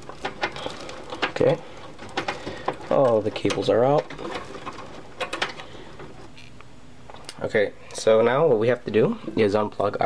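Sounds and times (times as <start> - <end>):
cables rustling: 0.0 - 10.0.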